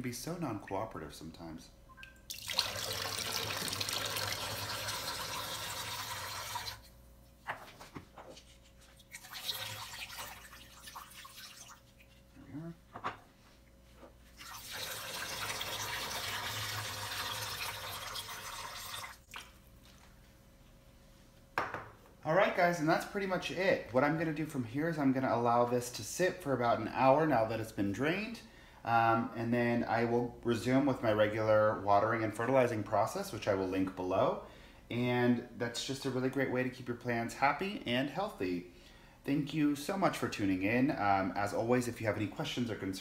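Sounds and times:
water pouring into steel sink: 2.3 - 6.8, 9.0 - 11.9, 14.4 - 19.5
glass containers knocking on countertop: 21.6 - 21.9.

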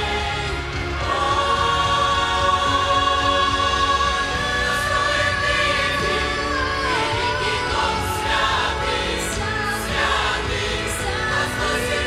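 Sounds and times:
mixed choir singing a hymn: 0.0 - 12.0.

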